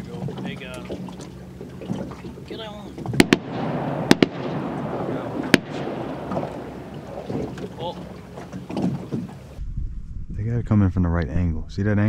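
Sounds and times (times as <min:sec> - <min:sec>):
shotgun shots echoing: 0:03.2 - 0:09.1.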